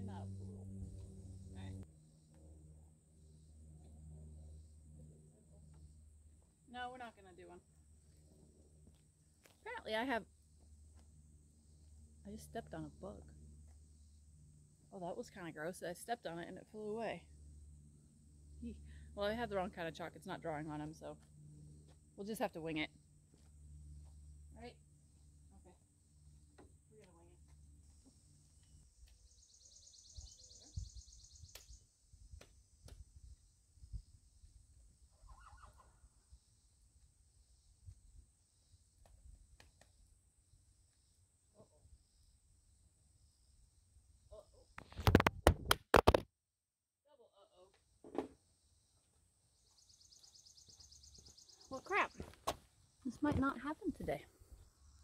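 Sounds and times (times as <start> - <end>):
distant horse whinny: 35.2 - 35.9.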